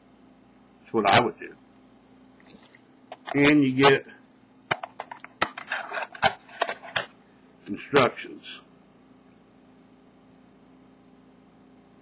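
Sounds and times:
taps and knocks on metal case: 0:04.7 - 0:05.6
paper rustling: 0:04.7 - 0:07.1.

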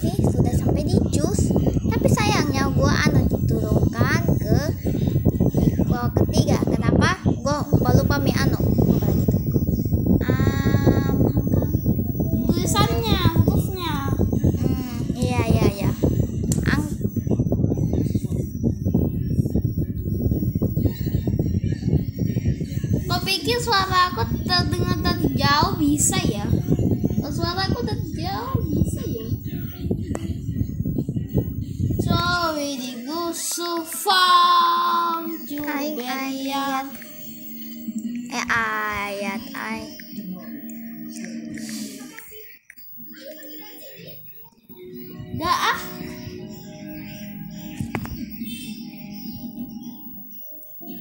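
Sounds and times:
child singing held notes: 0:32.0 - 0:48.5.

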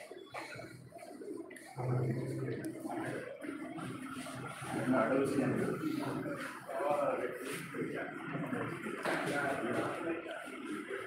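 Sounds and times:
men talking: 0:01.8 - 0:03.4, 0:04.0 - 0:11.0.

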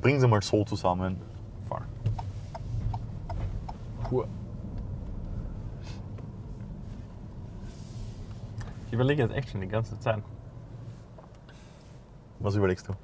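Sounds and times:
engine and road rumble: 0:00.0 - 0:13.0.

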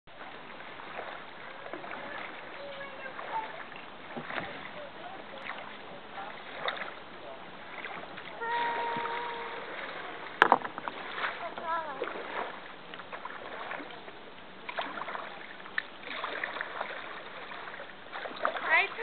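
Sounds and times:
paddles splashing in water: 0:00.1 - 0:19.0.

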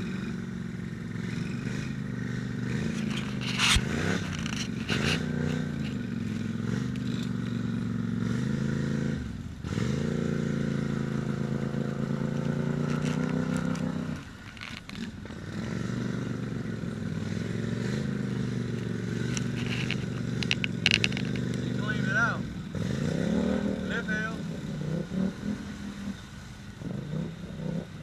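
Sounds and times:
quad engine running under load: 0:00.0 - 0:28.0.

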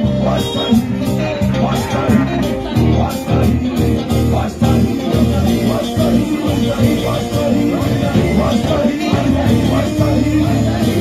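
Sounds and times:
band with steady bass beat: 0:00.0 - 0:11.0
choir singing gospel: 0:00.0 - 0:11.0.

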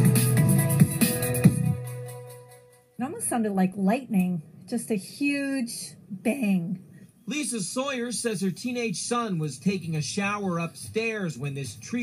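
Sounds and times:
electronic theme music: 0:00.0 - 0:02.9.

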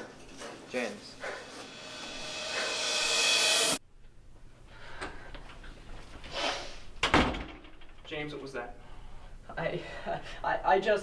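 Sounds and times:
rising wash of noise: 0:01.4 - 0:03.8.

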